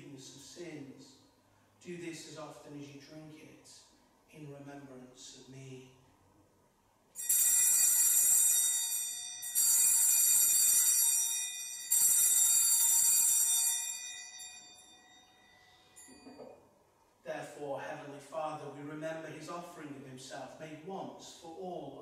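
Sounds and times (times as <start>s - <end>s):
altar bells ringing: 7.2s - 16.4s.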